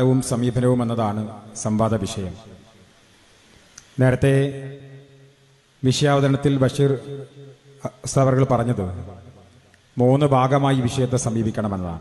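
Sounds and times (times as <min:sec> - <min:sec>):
man speaking into a microphone: 0:00.0 - 0:02.6, 0:04.0 - 0:05.2, 0:05.8 - 0:12.0.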